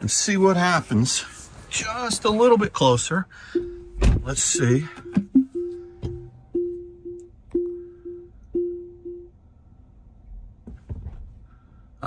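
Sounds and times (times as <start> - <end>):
electronic warning chime dings: 3.6 - 9.3.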